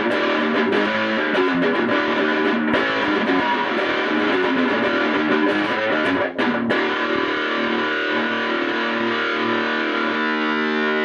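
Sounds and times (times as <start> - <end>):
electric guitar held notes: 0.0 - 11.0.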